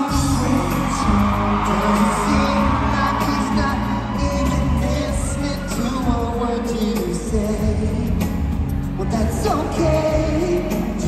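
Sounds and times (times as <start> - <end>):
band playing: 0.0 - 11.0
man singing: 0.0 - 11.0.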